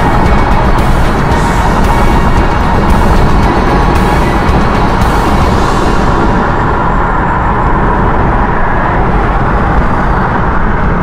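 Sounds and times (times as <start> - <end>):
road and tyre noise in car: 0.0 - 11.0.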